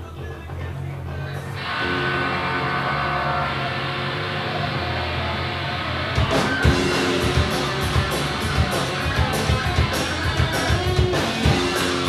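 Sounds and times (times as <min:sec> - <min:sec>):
bass guitar: 0:00.0 - 0:12.0
electric guitar chords: 0:00.0 - 0:12.0.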